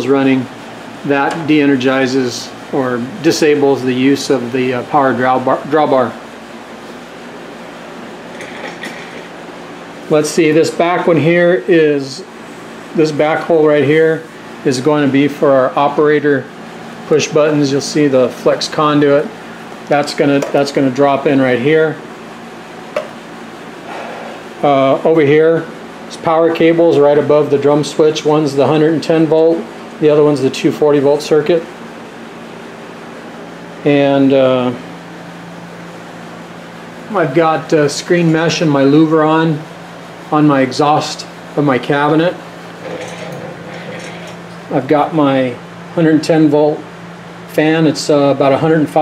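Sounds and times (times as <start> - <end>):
air-conditioning hiss: 0.0 - 49.0.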